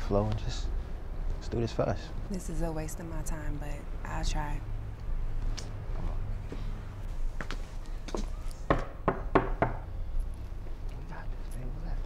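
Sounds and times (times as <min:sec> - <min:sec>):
knocking on a door: 0:08.7 - 0:09.9.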